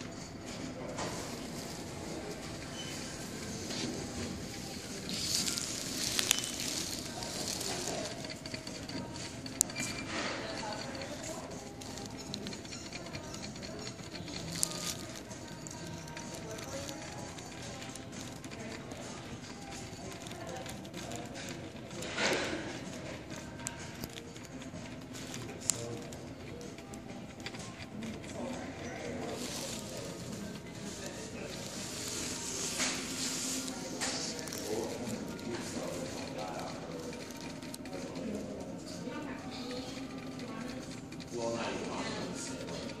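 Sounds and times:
room noise: 0:00.0 - 0:43.0
animals rustling on pellet litter: 0:01.0 - 0:09.1, 0:13.7 - 0:26.8, 0:27.4 - 0:38.7
ferret licking metal sipper tube: 0:01.0 - 0:43.0.

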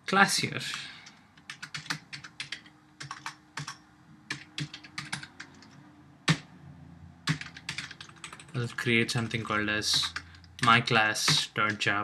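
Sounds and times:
computer keyboard typing: 0:00.7 - 0:06.5, 0:07.2 - 0:12.0.

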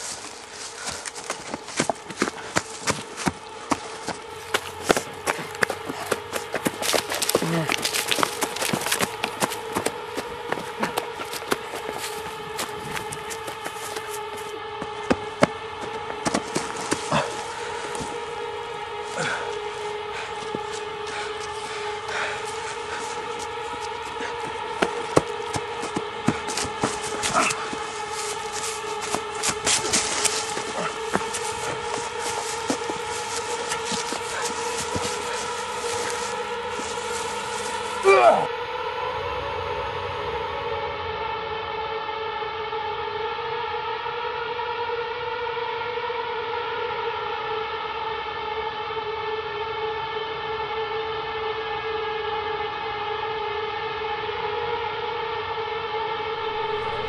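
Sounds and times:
hum of two held tones: 0:00.0 - 0:57.0.

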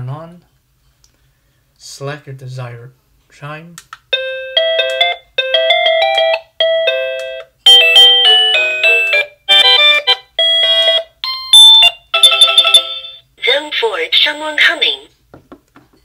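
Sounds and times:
electronic doorbell melody: 0:04.1 - 0:13.3.

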